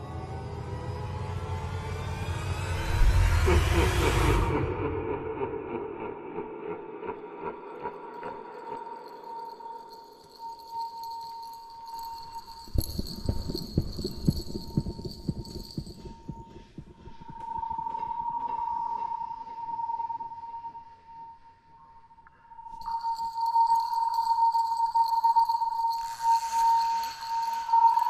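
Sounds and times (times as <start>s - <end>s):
steady high tone: 8.7s - 16.5s, 22.6s - 28.0s.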